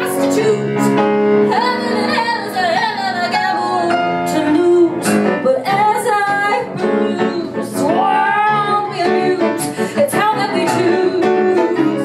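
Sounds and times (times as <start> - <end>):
instrumental accompaniment: 0.0 - 12.0
woman singing: 0.0 - 12.0.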